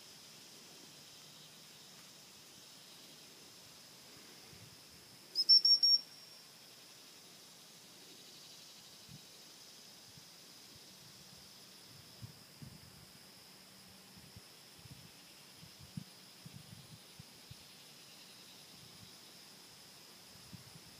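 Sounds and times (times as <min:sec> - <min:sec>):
faint drone of insects: 0:00.0 - 0:20.9
dog whistle short high pips: 0:05.4 - 0:06.1.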